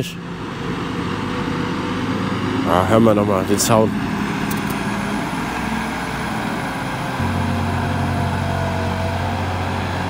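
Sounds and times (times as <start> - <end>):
distant farm machinery engine drone: 0.0 - 10.0.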